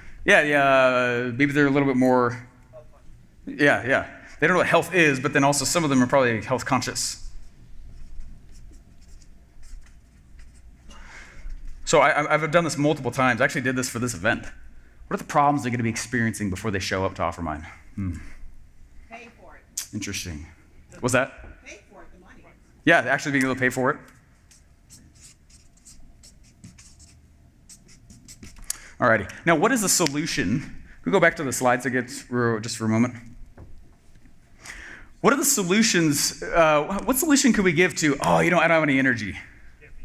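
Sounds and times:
marker writing on whiteboard: 7.9s - 10.8s, 24.4s - 28.7s.

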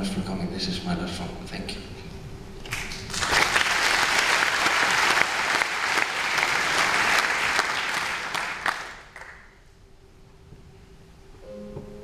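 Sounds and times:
audience applauding: 2.6s - 9.6s.

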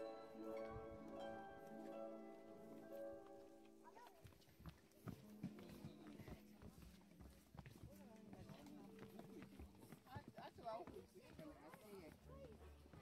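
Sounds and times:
footsteps on wooden boardwalk: 0.0s - 13.0s
people talking quietly: 0.0s - 13.0s.

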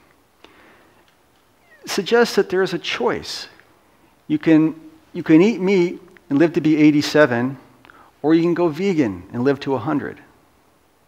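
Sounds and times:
faint room hiss: 0.0s - 11.0s
man talking: 1.8s - 3.6s, 4.3s - 10.3s.

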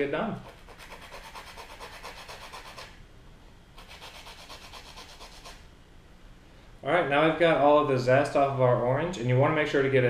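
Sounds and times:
grater rasping on orange peel: 0.4s - 2.9s, 3.8s - 5.6s.

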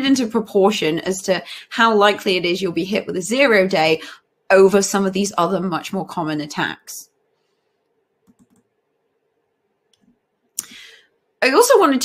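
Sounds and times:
computer clicks: 8.2s - 8.7s.

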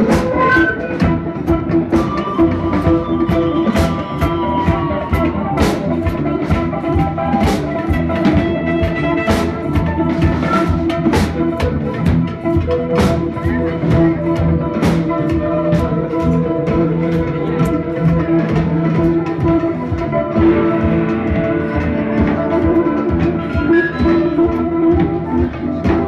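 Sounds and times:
drum kit beat: 0.0s - 26.0s
live band music: 0.0s - 26.0s.

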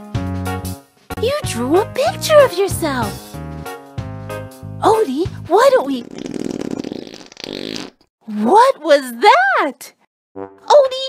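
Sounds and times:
fart sound effect: 5.9s - 8.1s.

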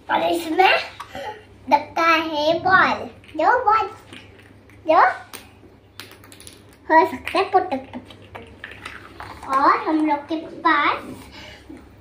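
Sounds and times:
girl speaking: 0.0s - 4.1s, 4.9s - 5.3s, 9.4s - 11.3s.

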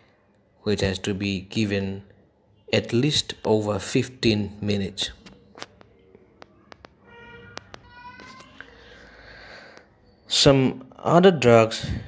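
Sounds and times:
faint high-pitched cry: 6.5s - 9.2s.

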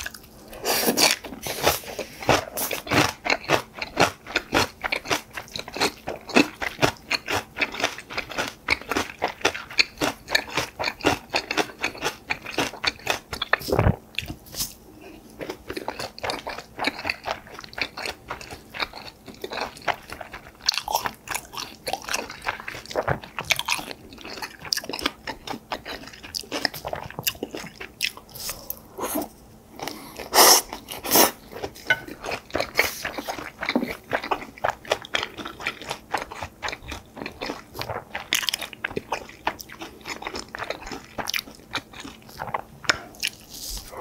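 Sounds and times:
person chewing food: 0.0s - 44.0s.

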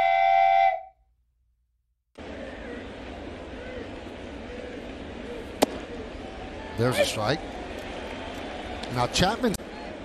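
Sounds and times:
crowd murmur: 2.2s - 9.0s.

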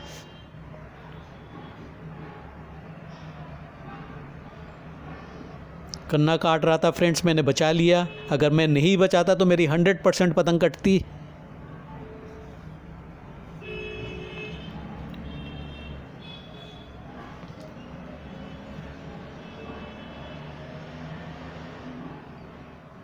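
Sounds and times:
low traffic rumble: 0.0s - 23.0s.

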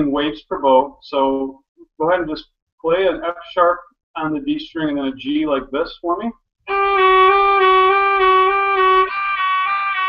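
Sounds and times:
violin bowed with vibrato: 6.7s - 10.0s.

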